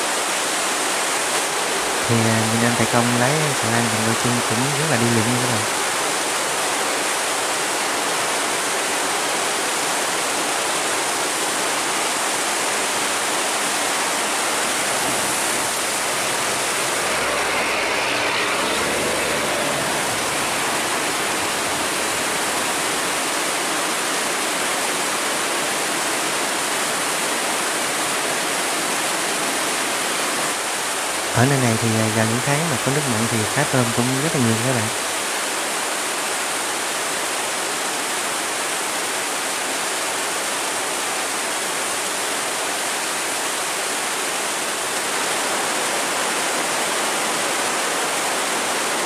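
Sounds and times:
turbulent river water rushing: 0.0s - 49.0s.

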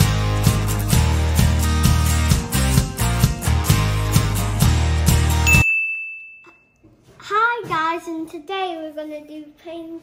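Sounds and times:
intro music with steady beat: 0.0s - 5.6s
high ding ringing: 5.4s - 6.8s.

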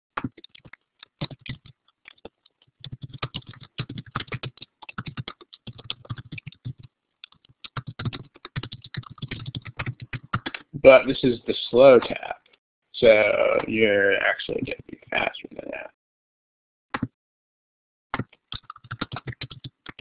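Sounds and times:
rapid keyboard typing: 0.2s - 10.7s, 18.2s - 20.0s
man's voice: 10.7s - 12.4s, 13.0s - 15.9s.

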